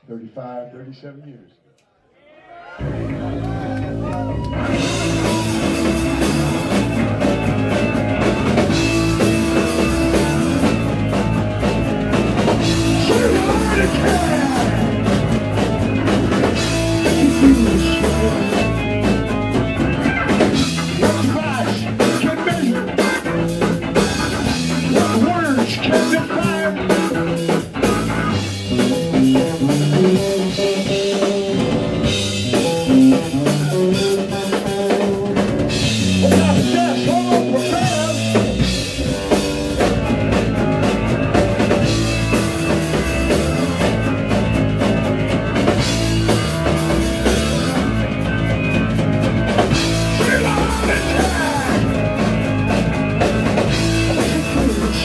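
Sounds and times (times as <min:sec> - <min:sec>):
drum kit: 0:02.8 - 0:55.0
electric bass: 0:02.8 - 0:55.0
keyboard: 0:02.8 - 0:55.0.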